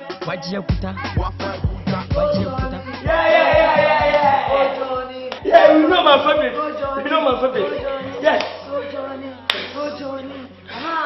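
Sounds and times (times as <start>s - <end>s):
hand clap: 4.1s - 4.3s, 5.3s - 5.5s, 8.3s - 8.6s, 9.5s - 9.8s.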